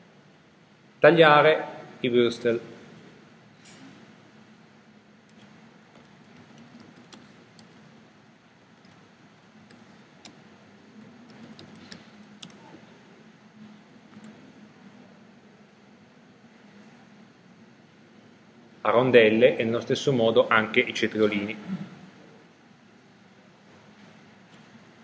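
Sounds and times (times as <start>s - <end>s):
room hiss and hum: 0.0s - 25.0s
keyboard and mouse clicking: 5.3s - 7.8s, 9.6s - 10.4s, 11.0s - 12.7s, 14.1s - 14.4s.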